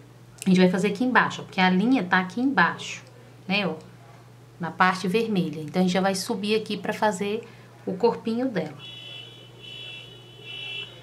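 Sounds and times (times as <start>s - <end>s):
low steady hum: 0.0s - 11.0s
high-pitched electronic buzzing tone: 8.8s - 11.0s.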